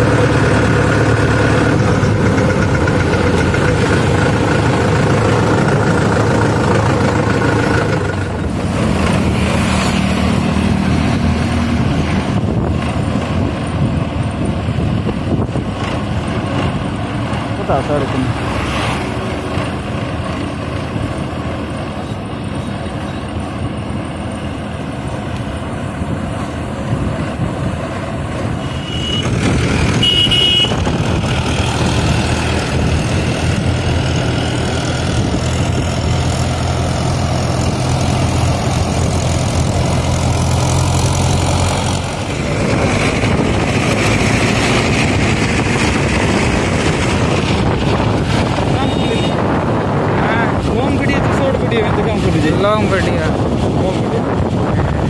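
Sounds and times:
road noise: 0.0 - 55.0
tractor engine drone: 0.0 - 55.0.

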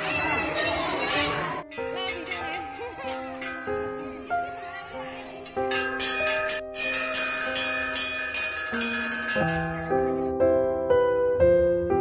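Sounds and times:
large metal bell ringing: 0.0 - 10.3
background music: 0.0 - 12.0.

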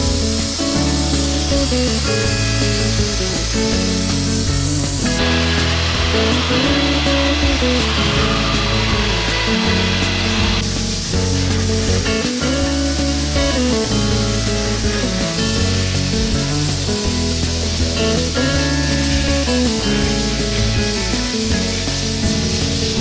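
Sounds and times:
background music: 0.0 - 23.0
steam cleaner hissing: 0.0 - 23.0.

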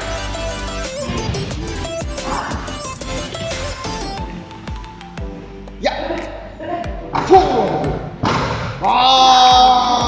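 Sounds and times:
person shouting encouragement: 8.8 - 10.0.

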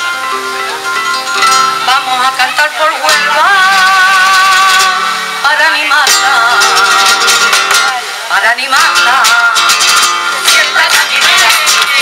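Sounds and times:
acoustic guitar: 0.0 - 12.0
women's group singing: 1.8 - 12.0
rhythmic hand clapping: 7.1 - 8.0, 8.8 - 12.0.

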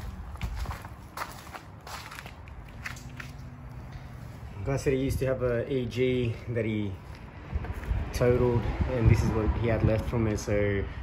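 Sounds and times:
soft footsteps: 0.0 - 4.6.

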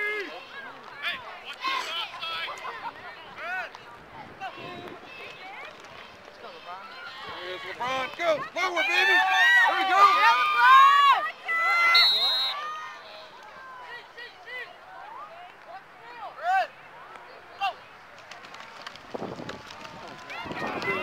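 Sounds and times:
spectators and coaches shouting: 0.0 - 3.7, 6.6 - 16.8.

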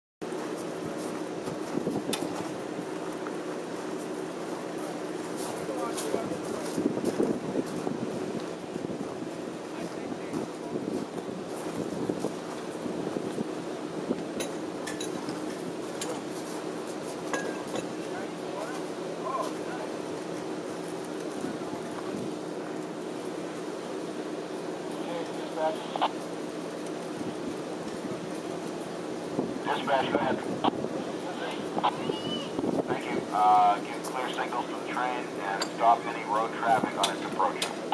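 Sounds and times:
steady low hum: 0.2 - 37.9
indistinct voices: 29.6 - 37.9.

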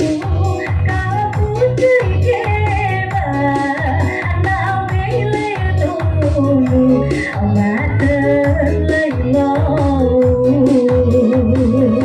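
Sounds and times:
electronic keyboard bass beat: 0.0 - 12.0
woman singing into a microphone: 0.0 - 12.0.

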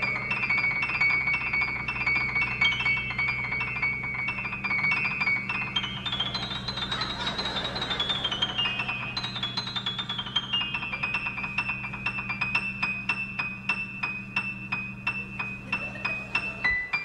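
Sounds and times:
fast high piano notes: 0.0 - 17.0
steady low hum: 0.0 - 17.0.

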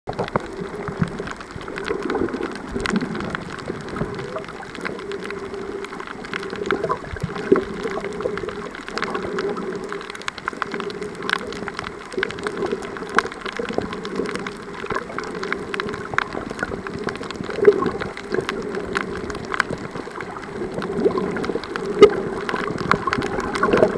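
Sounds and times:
muffled underwater noise: 0.1 - 23.9
sharp clicks and crackles: 0.1 - 23.9.

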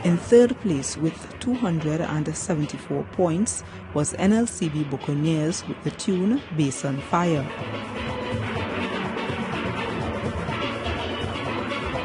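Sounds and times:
steel band playing: 6.8 - 12.0.

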